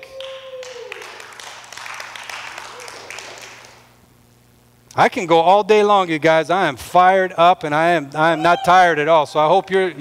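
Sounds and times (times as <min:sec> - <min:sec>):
congregation applauding: 0:00.0 - 0:04.0.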